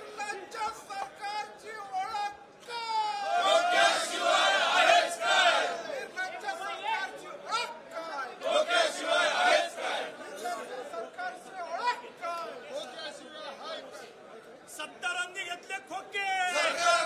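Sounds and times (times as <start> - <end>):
men chanting slogans in unison: 3.3 - 5.9, 8.4 - 10.2, 16.5 - 17.0.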